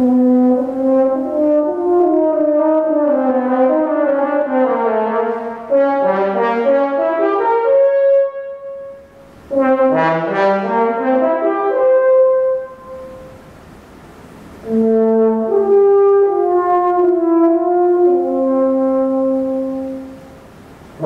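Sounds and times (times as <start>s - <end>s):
french horn melody: 0.0s - 13.6s, 14.4s - 21.0s.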